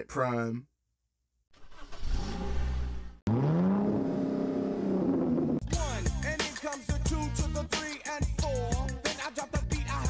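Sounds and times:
car engine rumbling and revving: 1.7s - 5.6s.

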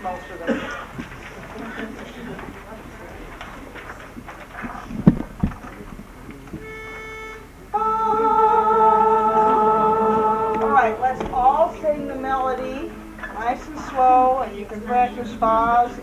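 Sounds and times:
class murmuring: 0.0s - 16.0s
thumps: 0.7s - 7.1s, 10.5s - 15.8s
pages turning: 0.8s - 6.6s
steady pitch note: 6.6s - 15.3s
group singing sustained chord: 7.7s - 16.0s.

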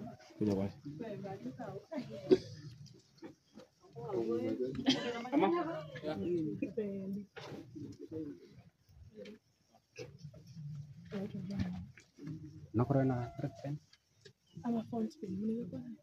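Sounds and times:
people talking: 11.1s - 11.8s, 14.6s - 16.0s.

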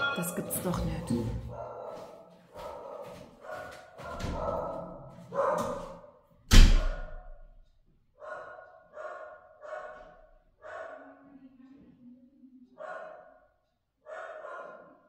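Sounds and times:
dog barking: 0.2s - 6.2s, 8.2s - 11.3s, 12.8s - 15.0s.

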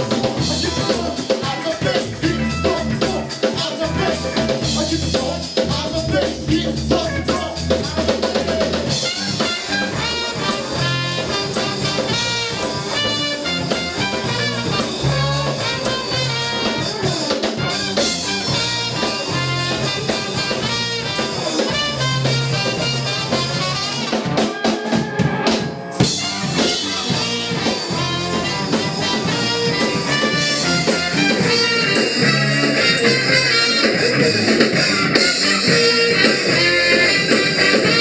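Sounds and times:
live funk band playing: 0.0s - 38.0s.

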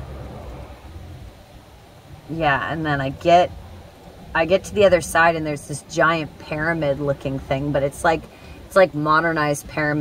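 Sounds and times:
faint hiss: 0.0s - 10.0s
low background rumble: 0.0s - 10.0s.

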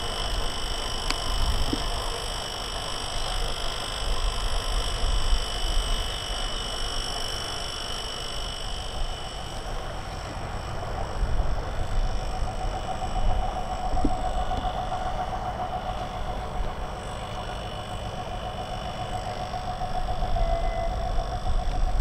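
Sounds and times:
diesel locomotive rumbling: 0.0s - 22.0s
locomotive whine: 0.0s - 22.0s.

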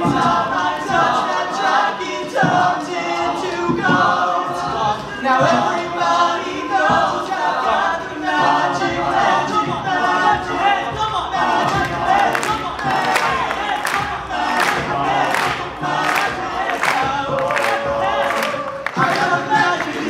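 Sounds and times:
men singing a cappella: 0.0s - 20.0s.

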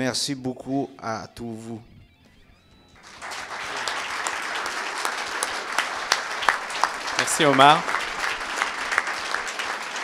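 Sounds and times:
audience applauding: 3.0s - 10.0s.

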